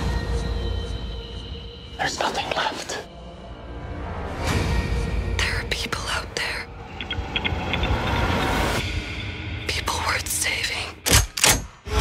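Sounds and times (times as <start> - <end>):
whispered voices: 2.0 - 3.1
deep drone: 3.1 - 10.8.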